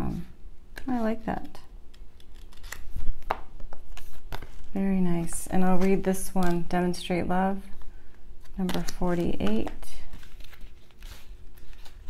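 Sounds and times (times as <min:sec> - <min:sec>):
cards clicking and rubbing: 0:00.8 - 0:06.7, 0:07.8 - 0:12.0.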